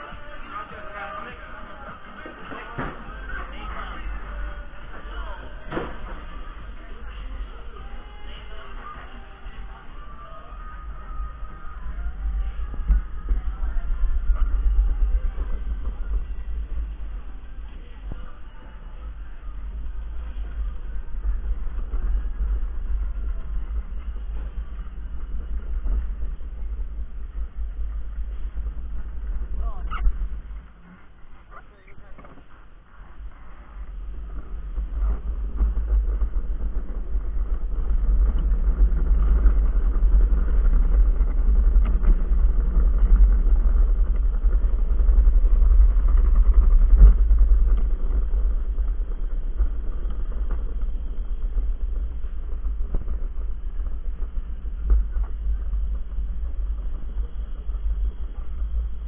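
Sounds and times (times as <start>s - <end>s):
wind buffeting microphone: 0.0s - 59.0s
cart wheels rumbling on concrete: 10.8s - 59.0s.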